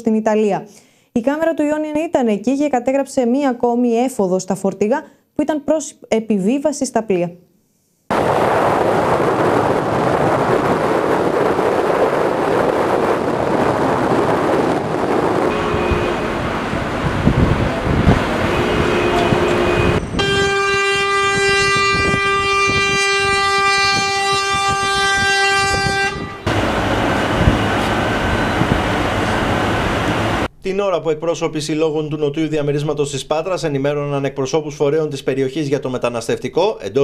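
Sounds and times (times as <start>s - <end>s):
steady outdoor rushing noise: 8.1s - 20.2s, 25.6s - 30.5s
long horn blast: 15.3s - 30.5s
two-note horn blasts: 15.4s - 30.5s.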